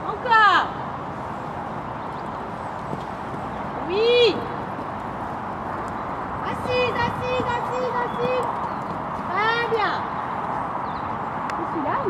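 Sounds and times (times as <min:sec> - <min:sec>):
hoofbeats on sand: 0:01.5 - 0:11.2.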